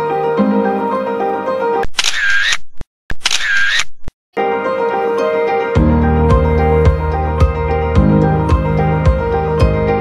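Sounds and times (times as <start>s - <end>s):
instrumental background music: 4.4s - 10.0s.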